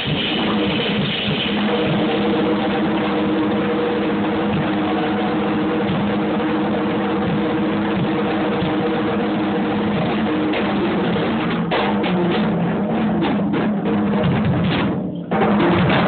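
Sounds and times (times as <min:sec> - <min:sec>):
steady held pitches: 0:00.0 - 0:14.2
drum roll with cymbal wash: 0:00.0 - 0:16.0.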